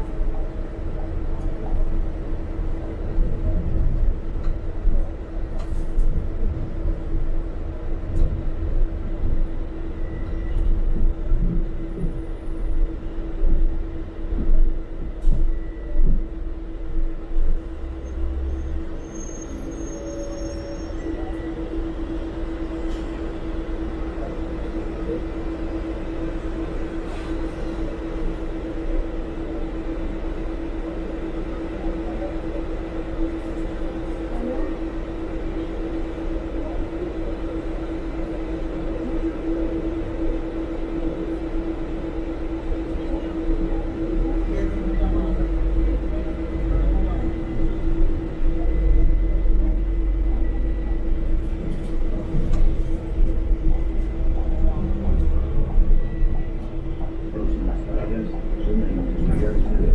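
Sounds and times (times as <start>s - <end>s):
bus engine rumble: 0.0s - 59.9s
constant hum: 0.0s - 59.9s.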